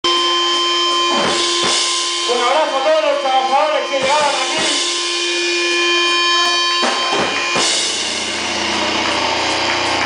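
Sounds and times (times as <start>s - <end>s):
bass guitar: 0.0s - 10.0s
distorted electric guitar chord: 0.0s - 10.0s.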